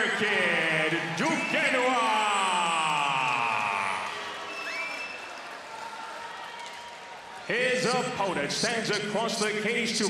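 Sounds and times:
crowd cheering: 0:00.0 - 0:08.5
whistle: 0:04.5 - 0:05.4.

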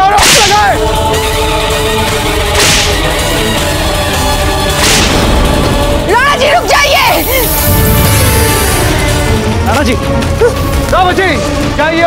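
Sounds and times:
background music with held notes: 0:00.0 - 0:12.0
whip lash swish: 0:02.6 - 0:03.0, 0:04.8 - 0:05.3.

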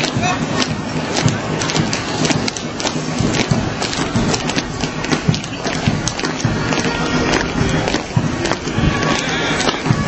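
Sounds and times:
marching footsteps on asphalt: 0:00.0 - 0:10.0
music playing: 0:00.0 - 0:10.0
street noise: 0:00.0 - 0:10.0.

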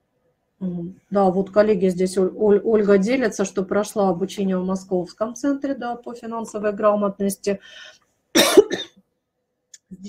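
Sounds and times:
woman coughing: 0:08.3 - 0:09.0.

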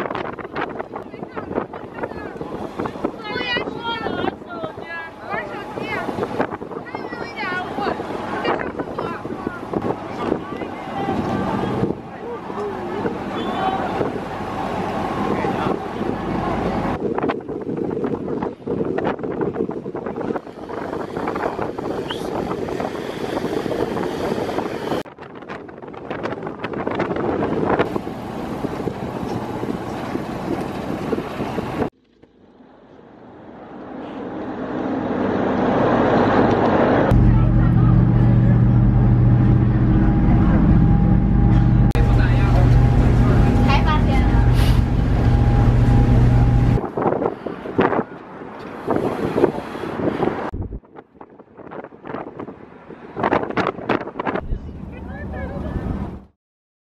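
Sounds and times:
rushing wake water: 0:00.0 - 0:25.1, 0:25.8 - 0:31.9, 0:33.8 - 0:50.6
wind buffeting microphone: 0:00.0 - 0:31.9, 0:35.0 - 0:56.3
boat engine droning: 0:01.2 - 0:17.0, 0:27.8 - 0:31.9, 0:33.0 - 0:46.8.

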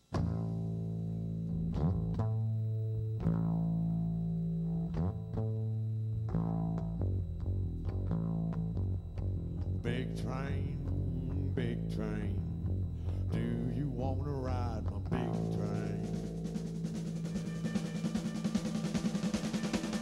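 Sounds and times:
electric bass guitar riff: 0:00.0 - 0:20.0
person singing: 0:09.8 - 0:12.5, 0:13.2 - 0:16.3.

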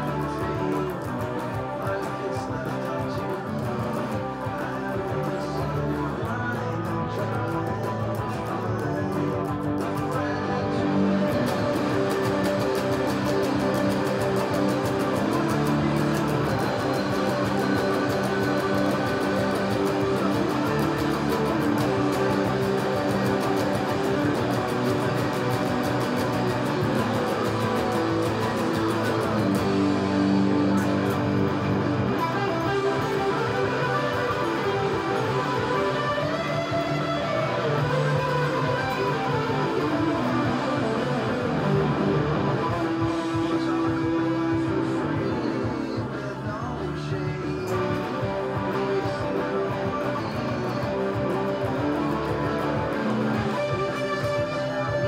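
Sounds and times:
electric guitar strumming chords: 0:00.0 - 0:55.0.

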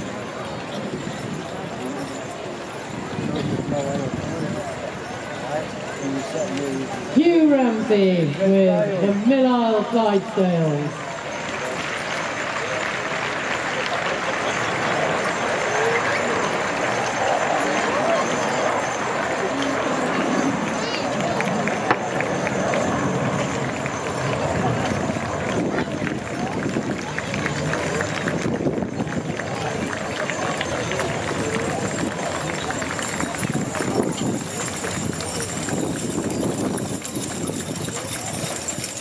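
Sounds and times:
people's voices: 0:00.0 - 0:39.0
horses trotting on turf: 0:29.4 - 0:39.0
harness clinking: 0:31.2 - 0:39.0.

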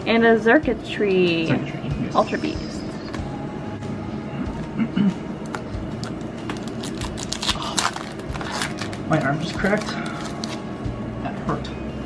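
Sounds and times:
foil wrapper crinkling and tearing: 0:06.0 - 0:10.6.

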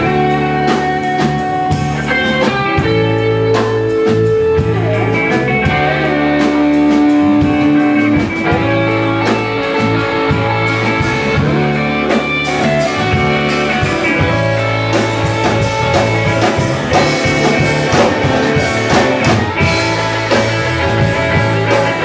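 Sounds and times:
electric guitars: 0:00.0 - 0:22.0
live rock band playing instrumental: 0:00.0 - 0:22.0.

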